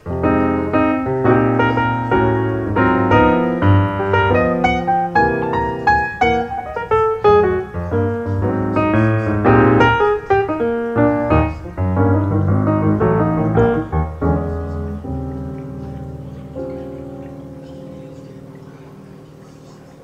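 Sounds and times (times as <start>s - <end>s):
piano music: 0.0s - 20.0s.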